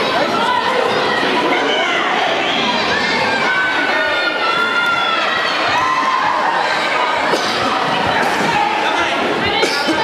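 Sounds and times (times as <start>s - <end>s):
crowd chattering and shouting: 0.0s - 10.0s.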